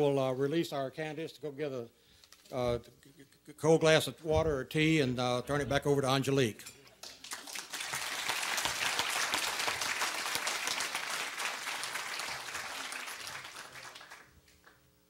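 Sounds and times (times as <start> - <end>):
audience applauding: 7.0 - 14.8.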